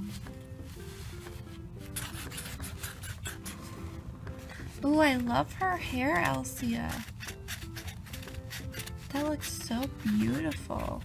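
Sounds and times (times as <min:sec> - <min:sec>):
soft background music: 0:00.0 - 0:11.0
marker scribbling on paper: 0:00.8 - 0:03.7, 0:05.0 - 0:11.0.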